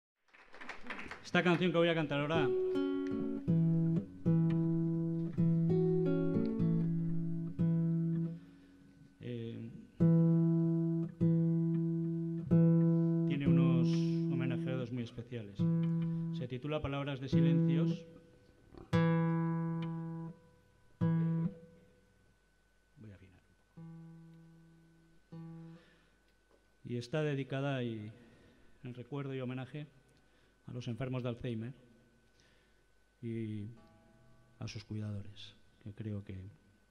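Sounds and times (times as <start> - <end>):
acoustic guitar chords: 1.2 - 22.4, 23.7 - 26.1.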